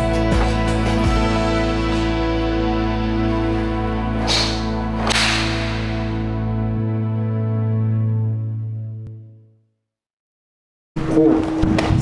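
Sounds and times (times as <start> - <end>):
background music with held tones: 0.0 - 9.6
arm strikes swishing: 4.2 - 6.9.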